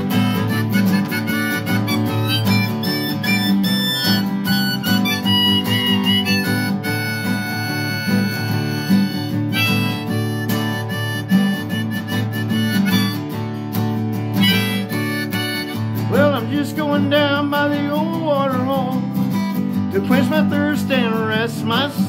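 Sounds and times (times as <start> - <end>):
harmonica playing: 0.0 - 20.8
strummed acoustic guitar: 0.0 - 22.0.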